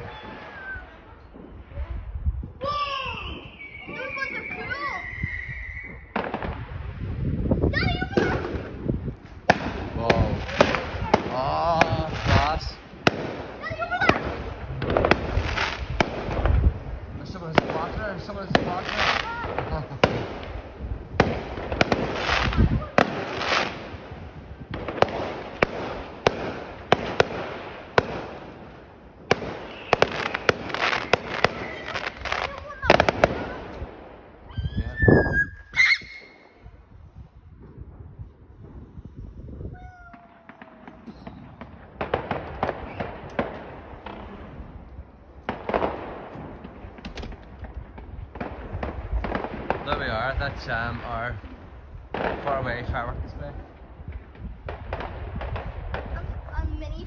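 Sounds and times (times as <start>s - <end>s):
distant fireworks bangs and crackles: 0.0s - 35.4s, 36.0s - 57.0s.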